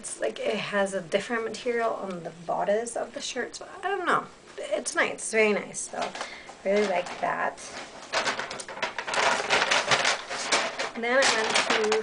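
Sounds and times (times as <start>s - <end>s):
clothing and shopping items rustling: 1.2s - 3.5s, 4.1s - 12.0s.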